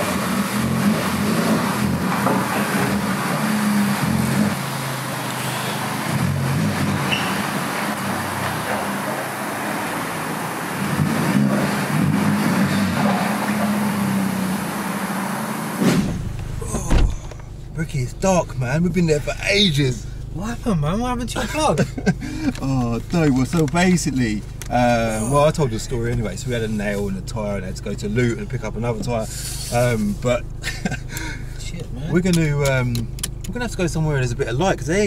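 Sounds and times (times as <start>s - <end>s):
car engine at low revs: 0.0s - 35.0s.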